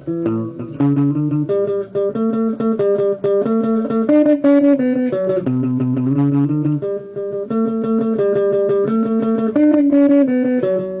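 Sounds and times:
electric guitar lead line: 0.0 - 11.0.

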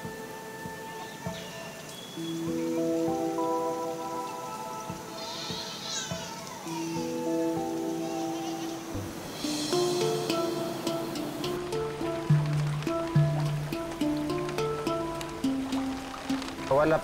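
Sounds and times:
soft music of sustained chords: 0.0 - 17.0
high chirping: 0.1 - 16.4.

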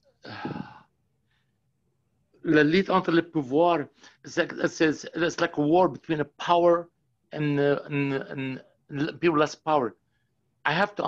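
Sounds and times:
man sighing: 0.2 - 0.8
faint breath: 3.9 - 4.3.

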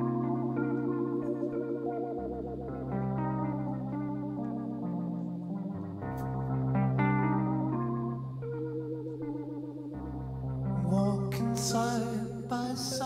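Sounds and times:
electric guitar through effects: 0.0 - 13.0
sustained bass notes: 0.0 - 13.0.

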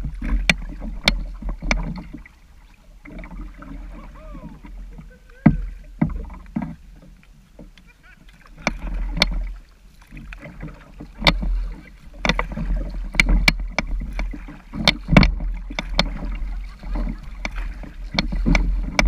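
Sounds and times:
low water rumble at bow: 0.0 - 19.0
paddle knocks and splashes: 0.0 - 19.0.

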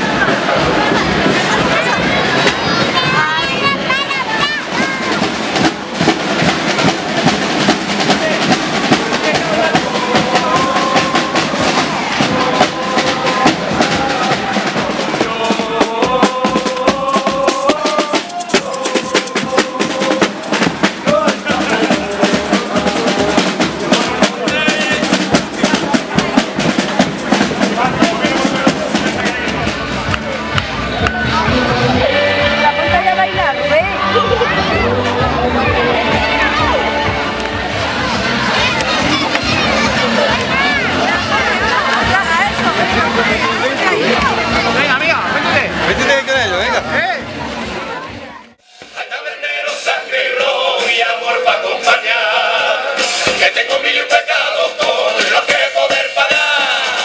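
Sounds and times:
marching snare and bass drums: 0.0 - 47.6, 52.9 - 57.0
band tune over drumming: 0.0 - 57.0.

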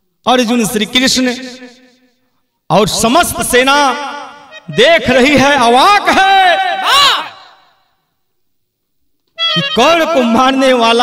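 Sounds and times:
man speaking with reverb: 0.2 - 1.8, 2.7 - 7.6, 9.6 - 11.0.

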